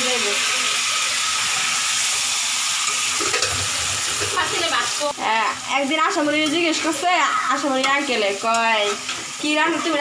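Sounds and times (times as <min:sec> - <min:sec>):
chicken sizzling in a pan: 0:00.0 - 0:10.0.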